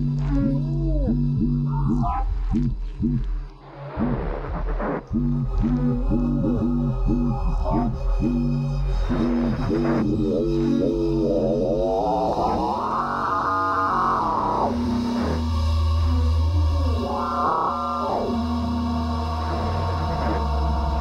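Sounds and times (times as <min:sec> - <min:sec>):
deep sustained bass drone: 0:00.0 - 0:03.3, 0:05.1 - 0:21.0.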